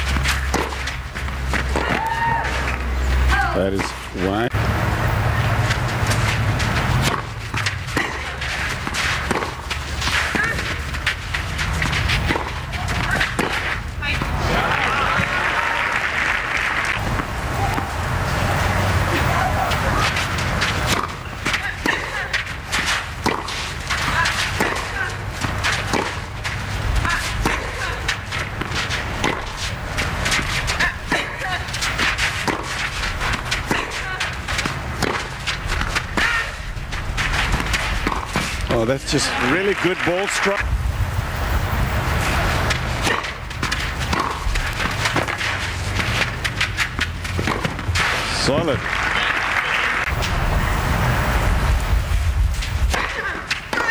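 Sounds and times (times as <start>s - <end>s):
tennis ball struck by rackets: 0.0s - 2.9s, 5.6s - 14.4s, 19.7s - 38.8s, 42.2s - 48.3s, 52.8s - 53.9s
voices: 0.0s - 40.7s, 41.8s - 51.0s, 52.9s - 53.9s
crowd noise: 0.0s - 53.9s.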